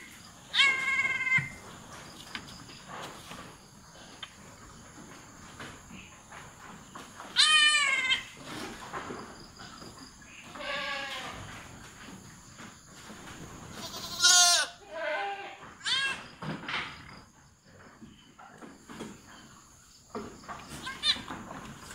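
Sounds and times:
goat bleating: 0:00.5 - 0:01.6, 0:07.3 - 0:08.4, 0:10.5 - 0:11.4, 0:13.7 - 0:16.2, 0:20.8 - 0:21.3.

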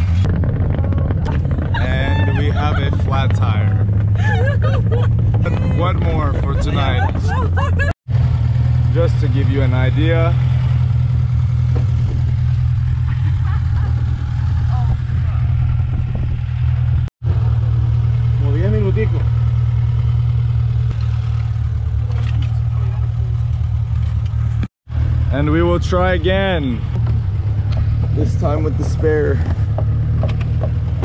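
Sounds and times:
car engine and tyres driving: 0:00.0 - 0:31.0.

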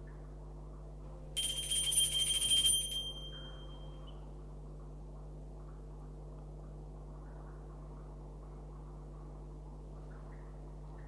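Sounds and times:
altar bells ringing: 0:01.4 - 0:04.2.

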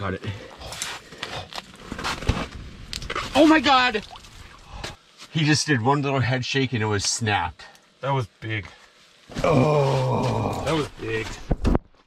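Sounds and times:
scraping and crackling of slushy ice: 0:00.6 - 0:03.6.

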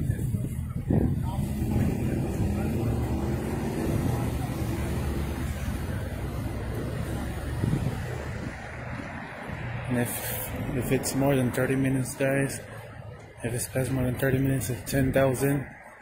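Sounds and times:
faint voices: 0:00.0 - 0:16.0
car engine running: 0:01.1 - 0:09.8.

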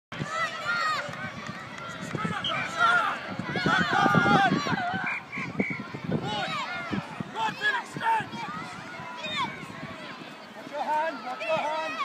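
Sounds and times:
adult voices: 0:00.2 - 0:12.0
children shouting: 0:00.2 - 0:12.0.

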